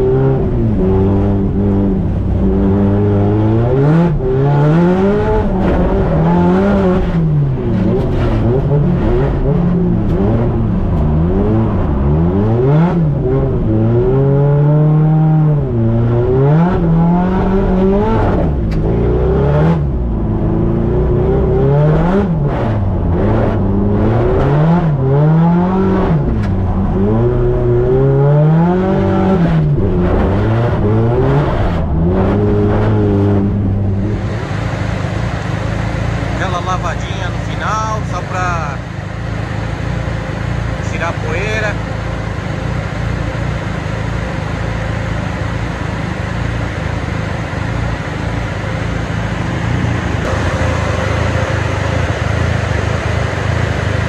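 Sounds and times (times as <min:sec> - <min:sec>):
turbocharged car engine revving: 0:00.0 - 0:54.0.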